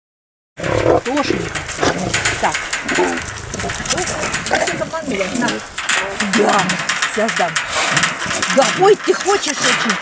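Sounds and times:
lions and tigers vocalizing: 0.6s - 7.0s, 7.6s - 8.6s
wire mesh cage rattling: 0.6s - 10.0s.

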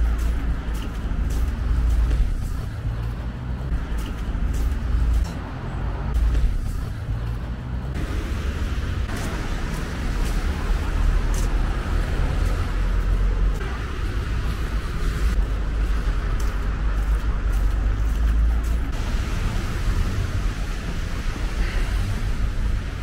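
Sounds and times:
footsteps crunching on snow: 0.0s - 5.4s, 9.0s - 13.7s, 14.8s - 19.0s
cars on the road: 0.0s - 23.0s.

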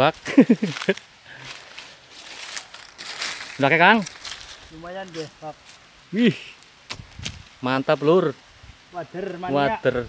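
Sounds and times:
rustling on dry leaves: 0.0s - 9.8s.

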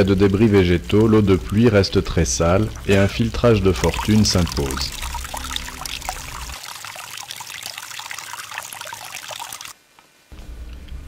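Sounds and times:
water trickling into a container: 0.0s - 9.8s.

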